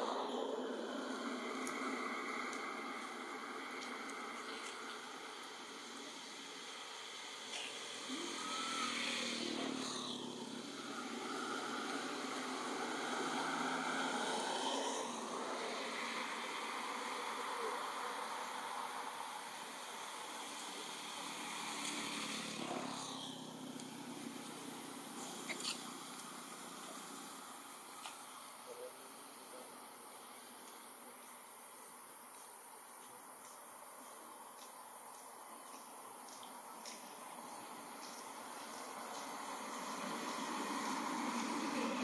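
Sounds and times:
motor traffic passing: 0.0s - 31.0s, 35.6s - 42.0s
high buzz of insects: 0.0s - 42.0s.

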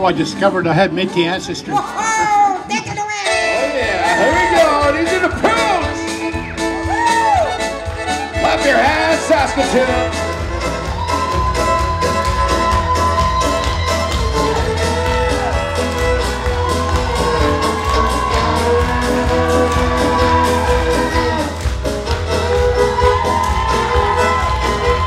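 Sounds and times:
fiddle band playing: 0.0s - 25.0s
audience cheering: 3.8s - 7.8s, 8.5s - 25.0s
steady bass beat: 3.9s - 25.0s
audience clapping along: 6.6s - 25.0s.

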